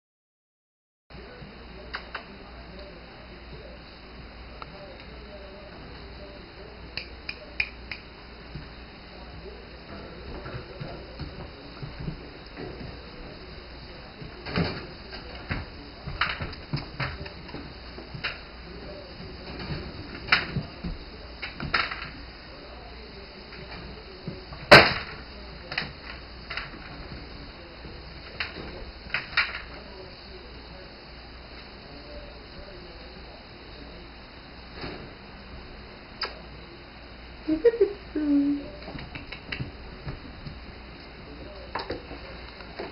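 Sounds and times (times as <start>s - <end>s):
finger snaps: 7.0s - 8.1s, 36.2s - 36.4s, 39.0s - 39.7s.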